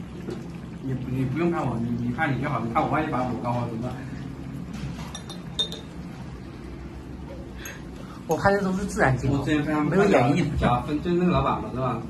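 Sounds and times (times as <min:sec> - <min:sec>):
low steady hum: 0:00.0 - 0:12.0
utensils clinking against dishes: 0:04.7 - 0:05.9.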